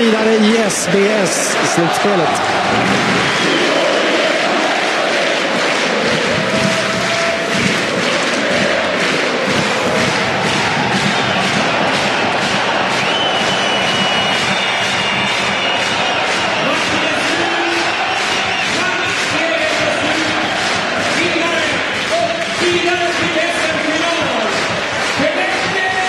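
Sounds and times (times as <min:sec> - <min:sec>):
rhythmic pounding beat: 0:00.0 - 0:26.0
crowd singing a chant: 0:00.3 - 0:14.8.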